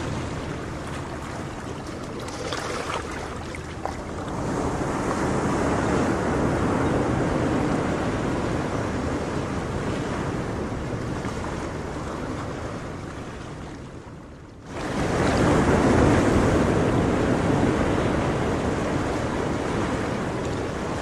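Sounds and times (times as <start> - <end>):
ocean surf washing: 0.0 - 21.0.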